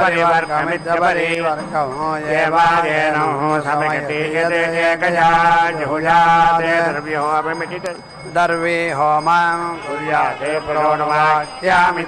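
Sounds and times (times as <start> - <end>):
man chanting mantras: 0.0 - 12.0.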